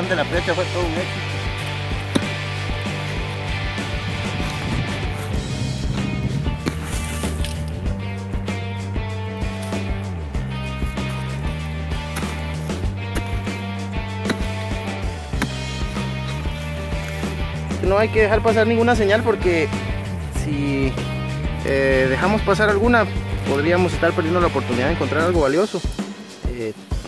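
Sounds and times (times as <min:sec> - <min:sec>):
background music with bass line: 0:00.0 - 0:27.0.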